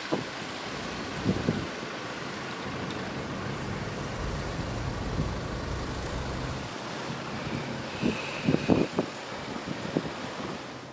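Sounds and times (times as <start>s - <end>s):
van engine rumbling: 0.5s - 7.1s
low thumps: 3.8s - 6.7s.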